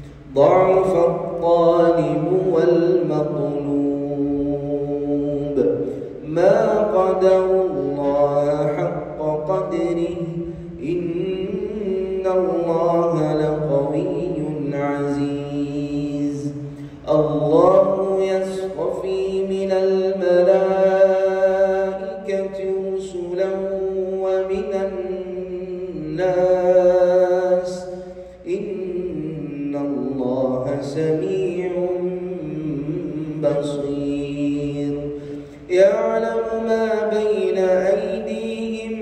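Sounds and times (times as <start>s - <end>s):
man reciting melodically: 0.0s - 39.0s.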